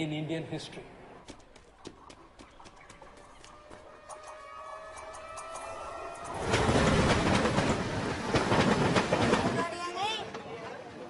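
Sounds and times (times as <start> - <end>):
train wheels clattering over rails: 5.2 - 10.4.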